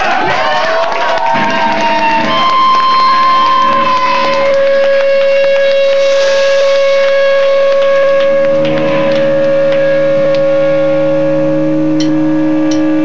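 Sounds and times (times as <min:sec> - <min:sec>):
electric guitar feedback tone: 0:01.2 - 0:13.0.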